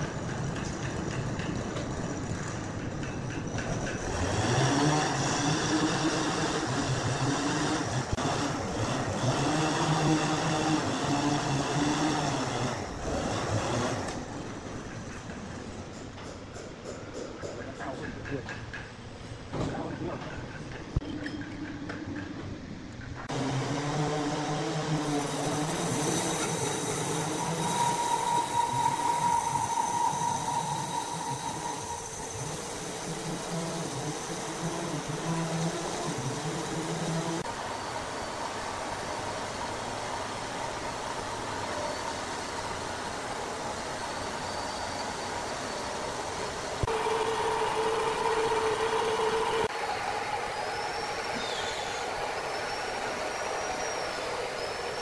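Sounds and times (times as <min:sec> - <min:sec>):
band sawmill cutting log: 0:04.1 - 0:14.2, 0:23.3 - 0:37.5, 0:40.7 - 0:49.8
saw blade whine: 0:23.3 - 0:55.0.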